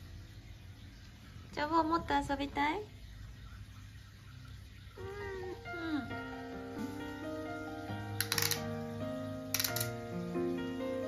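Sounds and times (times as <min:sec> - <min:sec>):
cat meowing: 0:05.0 - 0:06.1
background music with held notes: 0:05.0 - 0:11.0
rattle of clicks: 0:08.2 - 0:08.7, 0:09.5 - 0:10.0.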